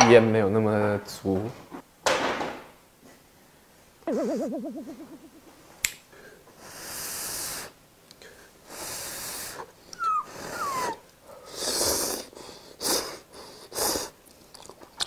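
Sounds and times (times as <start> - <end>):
wobbling cartoon sound effect: 4.1 - 5.6.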